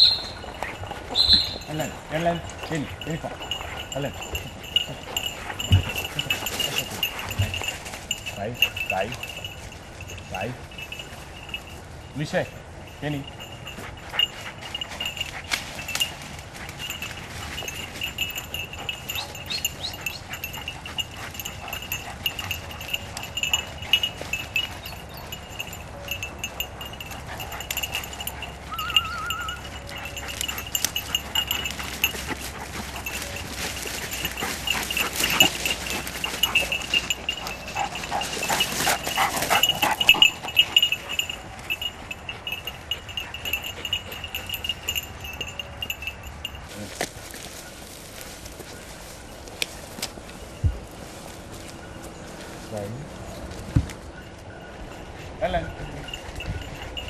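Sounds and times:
dog collar bell jingling: 0.0 - 57.0.

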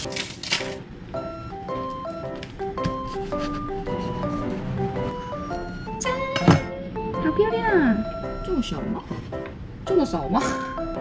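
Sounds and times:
cheerful background music: 0.0 - 11.0.

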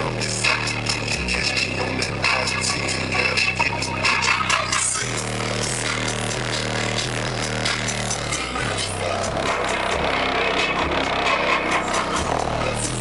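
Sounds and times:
hip-hop through car subwoofer: 0.0 - 13.0.

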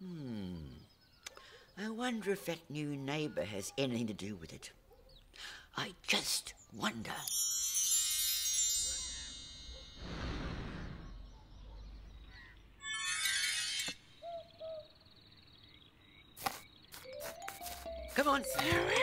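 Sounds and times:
sparkling chime shimmer: 7.2 - 10.7
high twinkling burst: 7.2 - 11.4
whoosh: 10.0 - 11.4.

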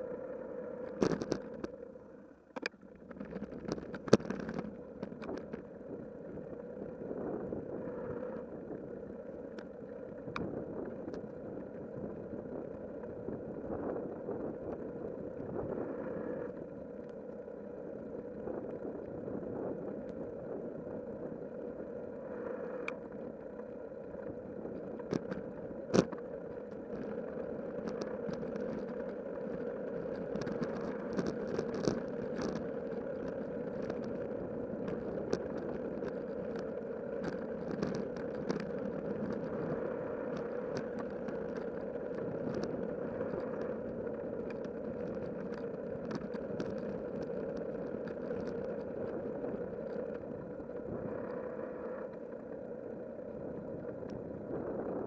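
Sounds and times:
bicycle rolling on asphalt: 0.0 - 55.0
small clicks and rattles: 0.8 - 1.8, 2.5 - 6.6, 22.4 - 54.6.

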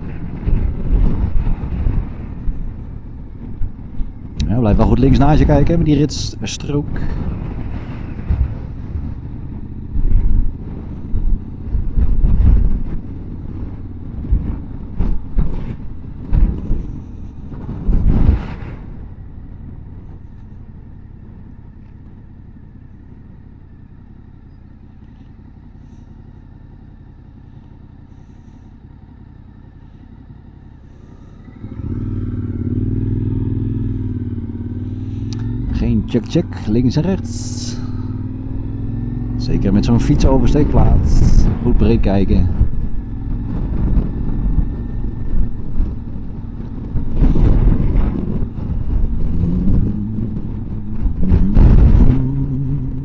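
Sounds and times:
wind buffeting microphone: 0.0 - 26.3, 27.2 - 53.0
motorcycle engine accelerating: 0.0 - 53.0
motorcycle engine rumble: 0.0 - 53.0.

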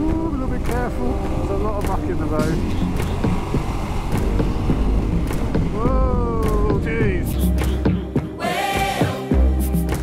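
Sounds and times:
motorcycle engine running: 0.0 - 7.0.

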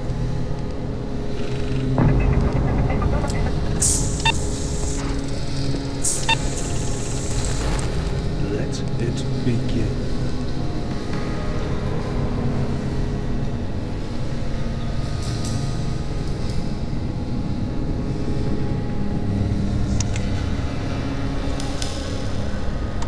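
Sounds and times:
held ambient tones: 1.3 - 7.3
low droning rumble: 1.8 - 9.1.

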